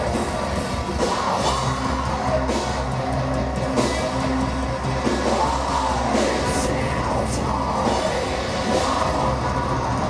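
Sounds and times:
bass guitar: 0.0 - 10.0
distorted electric guitar: 0.0 - 10.0
drums: 0.0 - 10.0.

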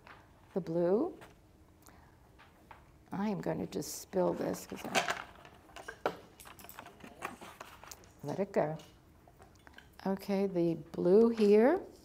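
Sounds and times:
pastel sticks clattering on table: 4.5 - 8.1.

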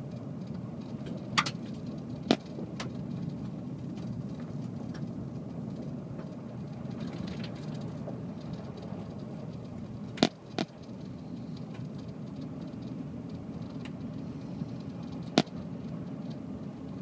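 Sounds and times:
car engine and tyre rumble: 0.0 - 17.0.

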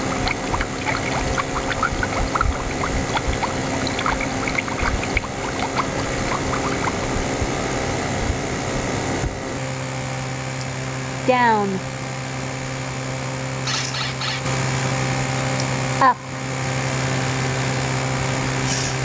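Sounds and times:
bubbling blips: 0.0 - 7.8
steady noise bed: 0.0 - 10.2
steady low hum: 0.0 - 13.5.

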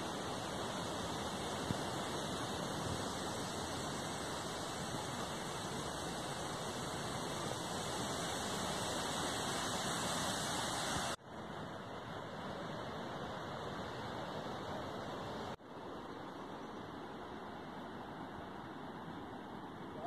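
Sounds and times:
fast-flowing stream rushing: 0.0 - 15.6.

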